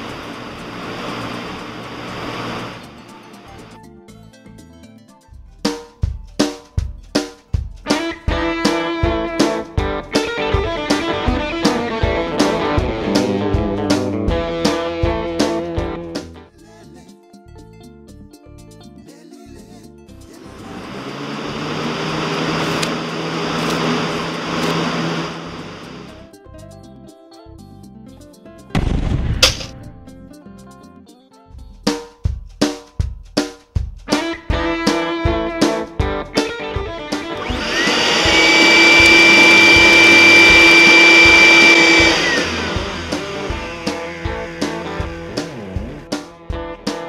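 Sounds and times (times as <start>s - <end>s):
vacuum cleaner running: 0.0s - 2.8s, 20.4s - 26.2s, 36.8s - 45.3s
rock music: 5.5s - 16.5s, 28.7s - 30.9s, 31.8s - 47.0s.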